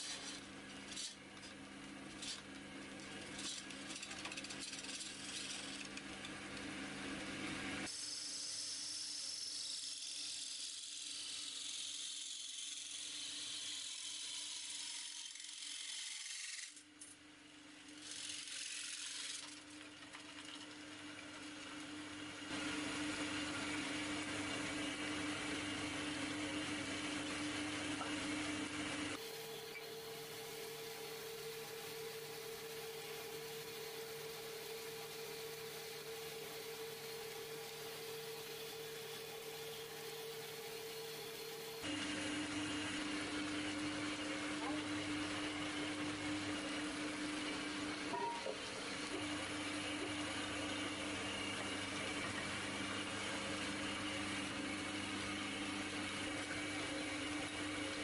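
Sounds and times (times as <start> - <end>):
chisel scraping spinning wood: 0.0 - 6.7, 9.1 - 16.8, 17.9 - 21.8, 22.5 - 58.0
wood lathe humming: 19.0 - 58.0.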